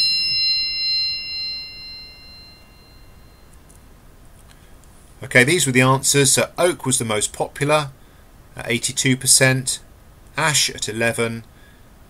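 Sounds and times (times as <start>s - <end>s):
high bell-like ding: 0.0s - 3.6s.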